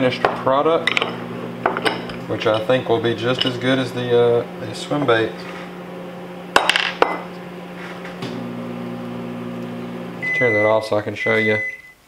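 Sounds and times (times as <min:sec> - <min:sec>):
microwave oven humming: 0:00.0 - 0:11.9.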